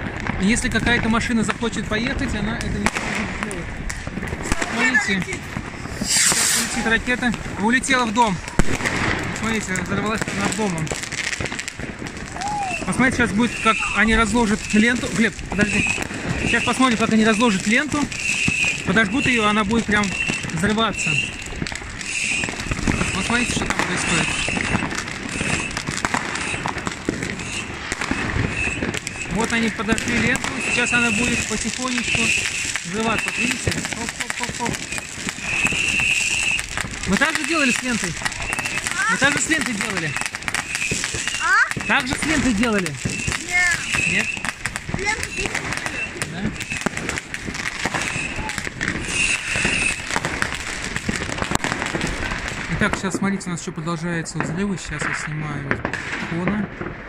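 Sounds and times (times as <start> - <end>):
fireworks and firecrackers banging: 0.0 - 57.0
high whistle: 6.0 - 6.8, 12.4 - 17.6, 18.2 - 26.7, 27.3 - 29.5, 30.2 - 33.6, 34.8 - 36.7, 37.3 - 42.4, 43.0 - 46.9, 48.0 - 50.1.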